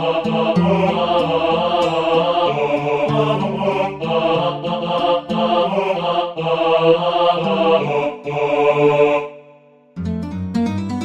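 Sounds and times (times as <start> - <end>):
synthesized choir voices: 0.0 - 9.9.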